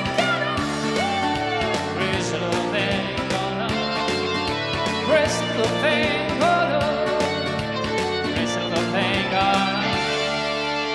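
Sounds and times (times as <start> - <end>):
keyboard: 0.0 - 10.9.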